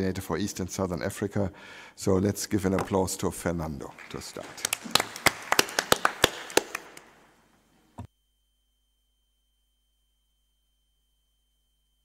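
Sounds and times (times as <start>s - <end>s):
audience applause: 3.8s - 7.3s.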